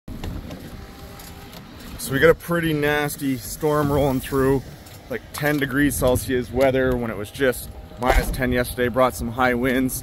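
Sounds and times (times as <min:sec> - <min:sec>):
wind: 0:00.1 - 0:10.0.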